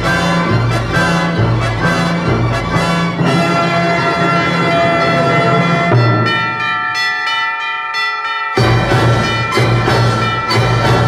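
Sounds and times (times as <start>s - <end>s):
symphony orchestra playing: 0.0s - 7.0s, 8.5s - 11.0s.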